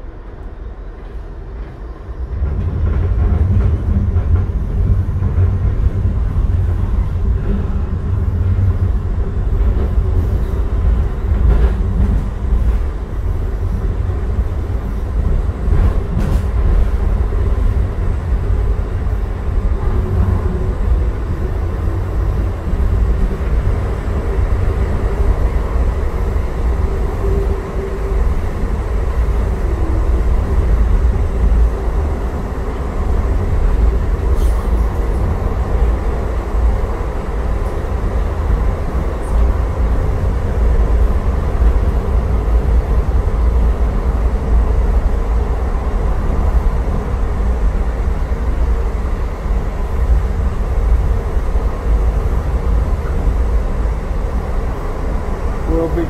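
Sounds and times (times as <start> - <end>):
train low rumble: 0.0 - 56.0.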